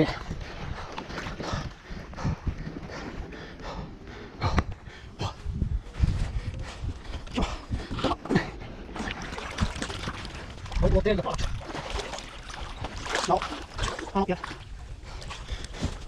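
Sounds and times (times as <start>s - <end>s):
muddy water splashing: 7.3s - 16.0s.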